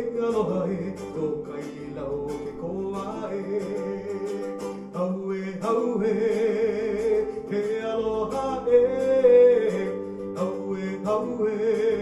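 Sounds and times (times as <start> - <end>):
man singing: 0.0 - 12.0
strummed ukulele: 0.0 - 12.0.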